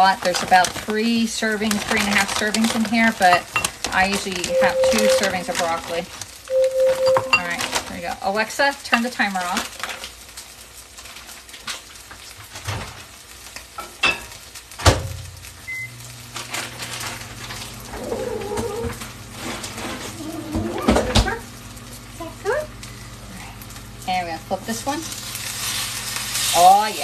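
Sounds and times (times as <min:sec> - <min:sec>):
meat sizzling in a pan: 0:00.0 - 0:06.6, 0:07.4 - 0:20.6, 0:21.4 - 0:27.0
microwave humming: 0:00.0 - 0:08.7, 0:12.6 - 0:27.0
short electronic beep: 0:04.5 - 0:05.4, 0:06.5 - 0:07.6.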